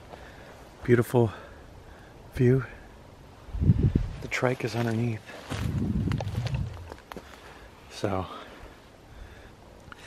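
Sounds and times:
footsteps in grass: 4.0 - 7.7
camera handling rumble: 5.5 - 7.4.

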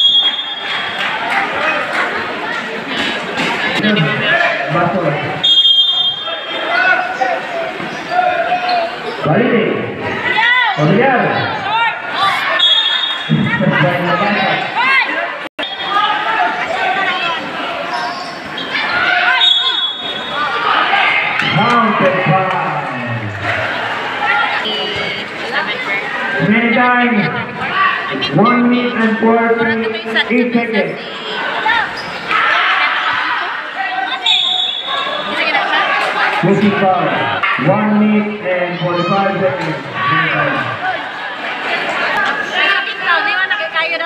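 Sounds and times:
voices calling out and talking: 0.0 - 44.0.

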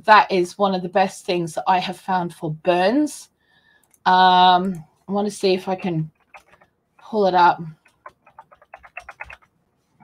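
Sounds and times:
computer keyboard typing: 5.6 - 6.7, 7.7 - 9.5.

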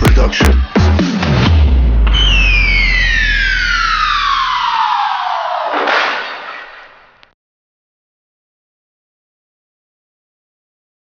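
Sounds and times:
deep bass tone: 1.4 - 4.7
synth tone sliding down: 2.0 - 5.8.

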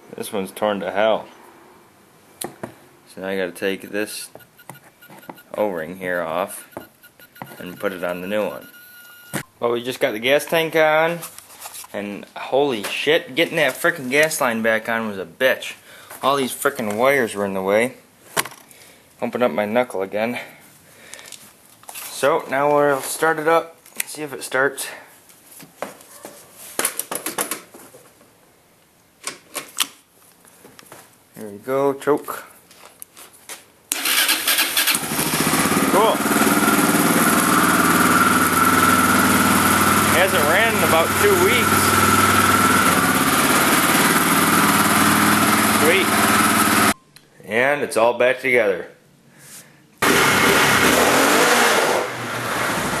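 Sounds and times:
engine roar: 34.1 - 47.0, 50.0 - 53.0.

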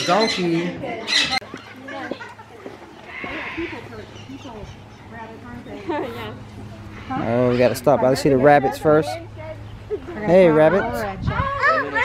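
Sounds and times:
animal call: 3.0 - 4.8.

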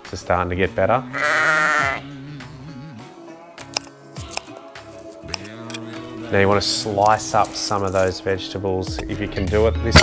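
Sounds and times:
background music: 0.0 - 10.0
sheep bleating: 1.0 - 2.2.

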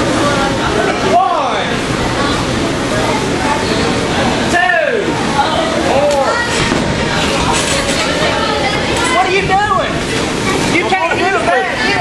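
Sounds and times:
crowd noise: 0.0 - 12.0
fans yelling: 0.1 - 7.5.

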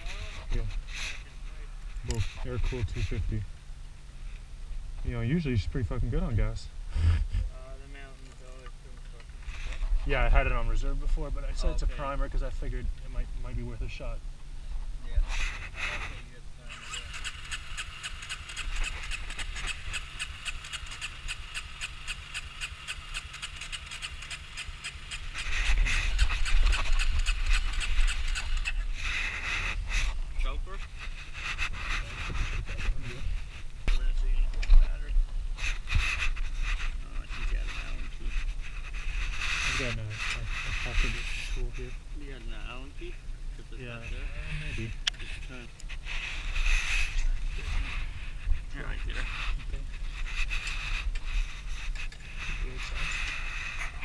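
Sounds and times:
motorcycle starter cranking engine: 16.8 - 28.8.

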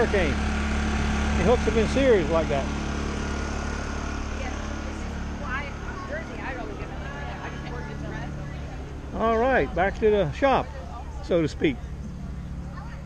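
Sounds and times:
portable generators humming: 0.0 - 13.0.

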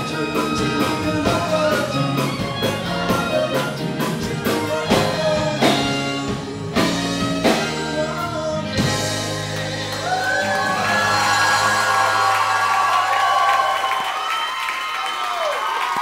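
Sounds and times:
voices whooping and cheering: 9.9 - 16.0.

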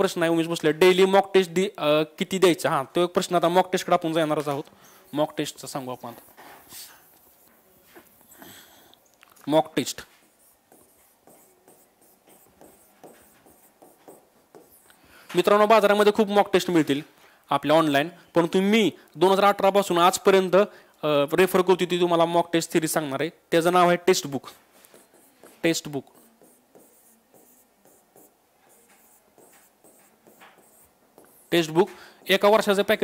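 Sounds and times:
marker writing on whiteboard: 3.5 - 8.4, 9.5 - 16.7, 24.0 - 33.0.

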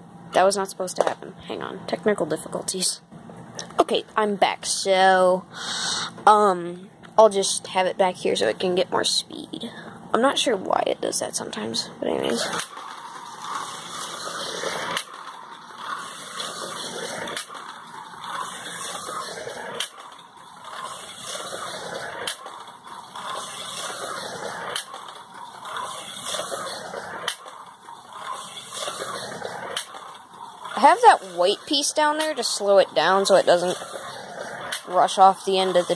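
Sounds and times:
slot car motor whirring: 0.0 - 35.9.

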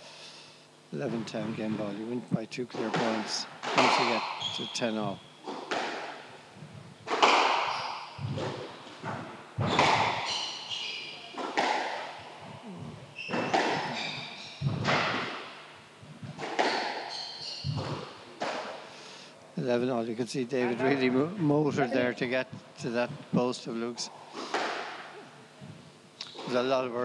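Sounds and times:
squash ball hitting rackets: 2.7 - 6.4, 7.0 - 15.6, 16.2 - 18.9, 24.4 - 25.1
shoes squeaking on wooden floor: 3.8 - 5.7, 6.8 - 11.6, 12.6 - 15.1, 16.1 - 18.1
ball thudding into walls: 7.0 - 10.4.

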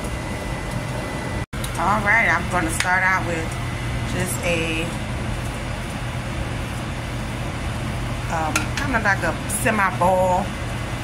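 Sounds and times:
low hum: 0.0 - 11.0
pot boiling rush: 0.0 - 11.0.

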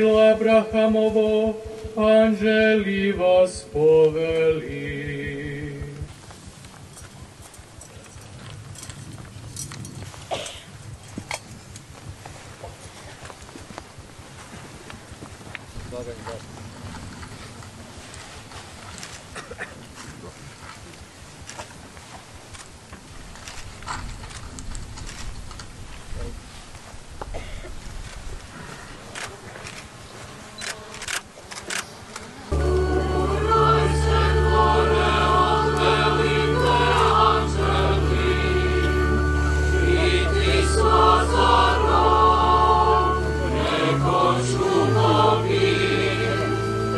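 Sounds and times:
choir singing: 0.0 - 6.0, 32.5 - 46.9
low steady rumble: 0.0 - 13.0, 32.5 - 46.9
soft clicks and rustles: 6.0 - 29.9
light clicks and clinks: 6.7 - 10.1.

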